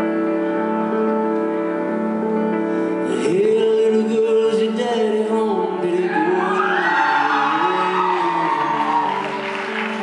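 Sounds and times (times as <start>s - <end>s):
piano playing slow chords: 0.0s - 10.0s.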